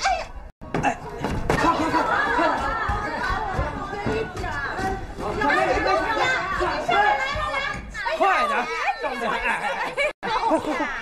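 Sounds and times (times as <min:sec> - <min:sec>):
several voices talking: 0:00.8 - 0:11.0.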